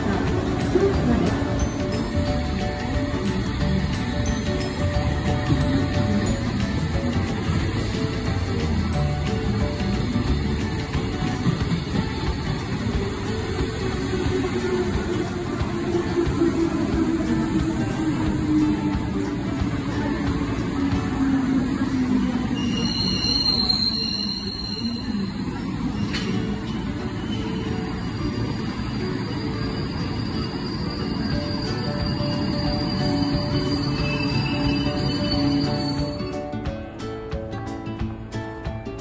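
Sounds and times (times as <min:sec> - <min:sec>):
background music: 0:00.0 - 0:39.0
electric train rumbling: 0:00.0 - 0:39.0.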